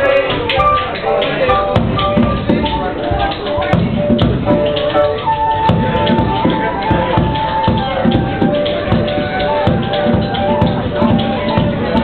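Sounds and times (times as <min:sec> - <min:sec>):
flute: 0:00.0 - 0:12.0
piano: 0:00.0 - 0:12.0
tap shoes striking the floor: 0:00.3 - 0:12.0.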